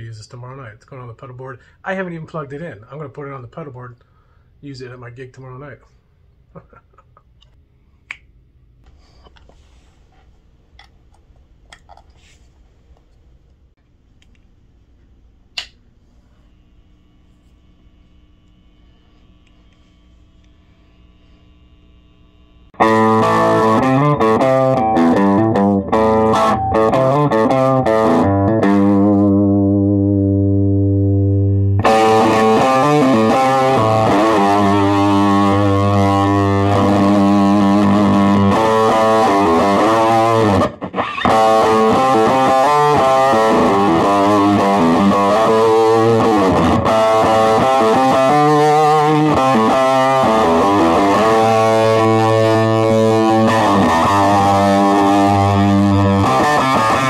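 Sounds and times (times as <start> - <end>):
fuzz electric guitar: 20.9 - 57.0.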